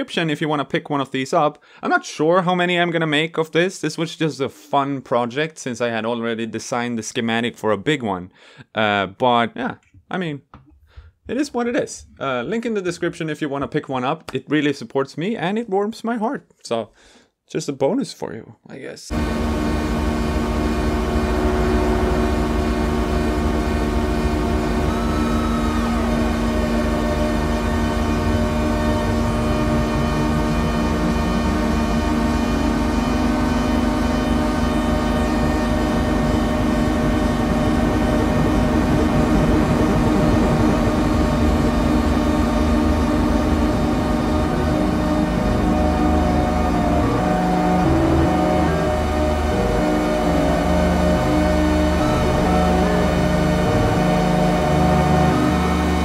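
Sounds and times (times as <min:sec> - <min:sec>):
low tone sliding upward: 0:19.1 - 0:56.0
synthesizer drone: 0:19.1 - 0:56.0.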